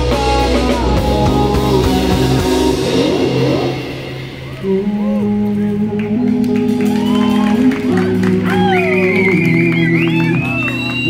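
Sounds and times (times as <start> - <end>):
drums and band: 0.0 - 11.0.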